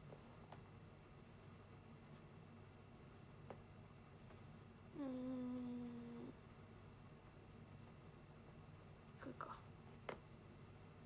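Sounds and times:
woman humming mmm: 0:05.0 - 0:06.4.

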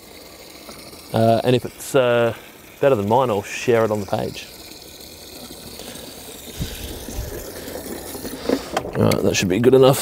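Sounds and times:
hose water into watering can: 0:00.0 - 0:10.0.

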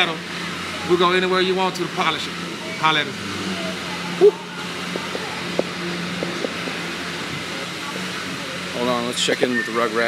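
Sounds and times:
workshop hum and hiss: 0:00.0 - 0:10.0
short voiced sound: 0:04.2 - 0:04.6.

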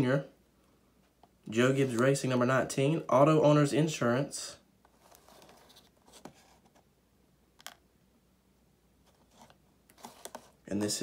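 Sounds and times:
box rustling in hands: 0:04.9 - 0:06.9, 0:09.0 - 0:11.0.

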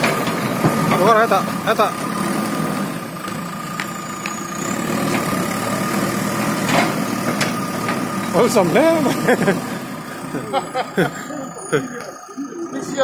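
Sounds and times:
diesel engine running at low revs: 0:00.0 - 0:13.0.

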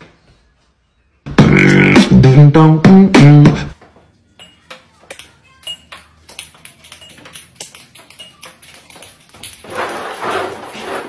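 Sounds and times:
ping-pong balls clattering: 0:04.4 - 0:11.0.

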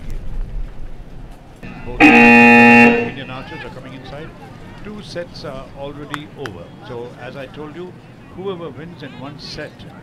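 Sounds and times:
signal horn blast: 0:01.6 - 0:03.4.

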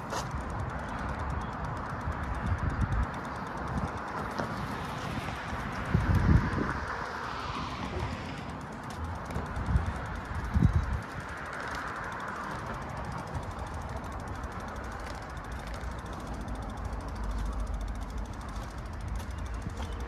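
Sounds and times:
distant traffic hum: 0:00.0 - 0:20.0.

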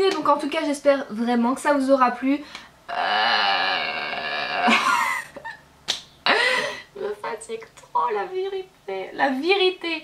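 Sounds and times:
woman's wavering vocal sound: 0:02.9 - 0:04.9.

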